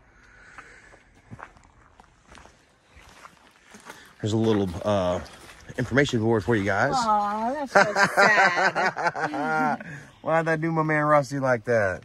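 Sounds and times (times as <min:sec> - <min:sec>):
faint footsteps on trail: 0:00.0 - 0:09.2.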